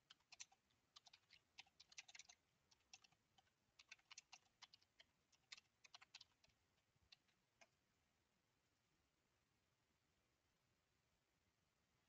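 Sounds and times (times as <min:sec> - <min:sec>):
typing on computer keyboard: 0:00.0 - 0:07.7.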